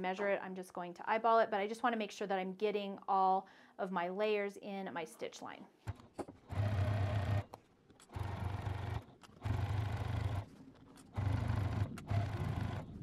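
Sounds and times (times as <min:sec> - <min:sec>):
sewing machine stitching: 0:06.3 - 0:13.0.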